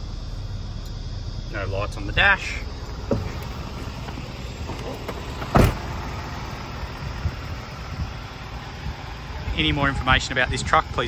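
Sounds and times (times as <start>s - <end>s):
steady low rumble: 0.0s - 11.0s
truck door slamming shut: 3.0s - 6.3s.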